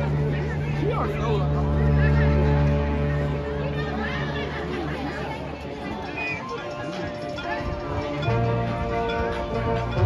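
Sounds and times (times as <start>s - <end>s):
people talking: 0.0s - 9.6s
marching band playing held notes: 4.6s - 10.0s.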